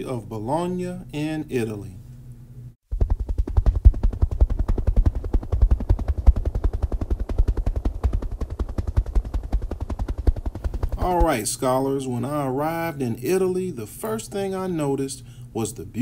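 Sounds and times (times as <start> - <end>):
rapid low thuds: 2.8 - 11.5.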